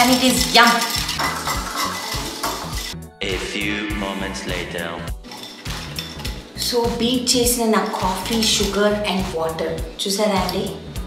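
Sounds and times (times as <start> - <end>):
whisk scraping and clinking bowl: 0.0 - 3.0, 7.9 - 9.0
light background music: 0.0 - 11.0.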